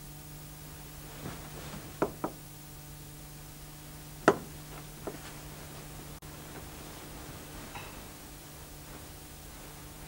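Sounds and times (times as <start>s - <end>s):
bedclothes rustling: 1.0s - 2.1s, 4.7s - 10.0s
sharp knocks: 4.2s - 5.2s.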